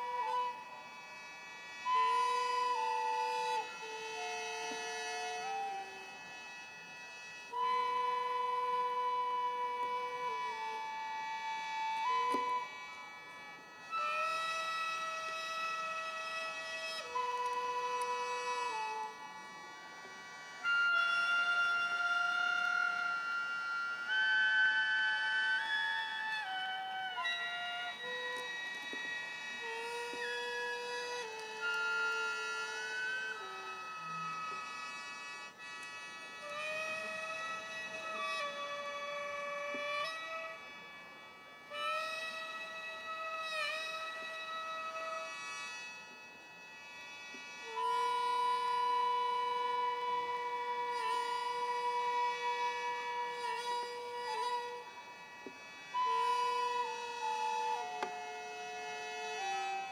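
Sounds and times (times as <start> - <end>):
solo reedy wind instrument: 0.0 - 59.9.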